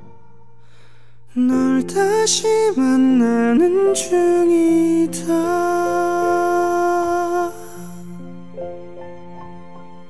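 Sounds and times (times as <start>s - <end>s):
soft instrumental accompaniment: 0.0s - 10.0s
man singing long note: 1.3s - 8.0s.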